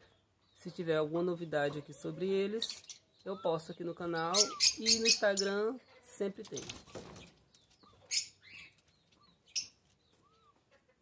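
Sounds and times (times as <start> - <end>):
sharp noisy bird calls: 2.6 - 5.9
bird flapping wings: 6.5 - 7.4
faint soft chirps: 6.6 - 10.6.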